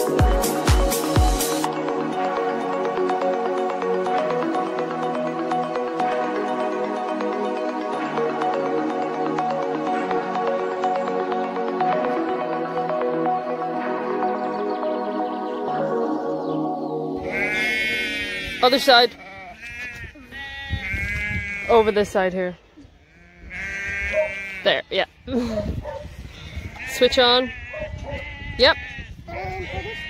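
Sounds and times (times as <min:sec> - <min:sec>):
background music: 0:00.0 - 0:19.2
sheep bleating: 0:17.2 - 0:22.1, 0:23.1 - 0:25.2, 0:26.6 - 0:30.0
faint bleats of flock: 0:17.2 - 0:22.2, 0:23.0 - 0:25.3, 0:26.5 - 0:30.0.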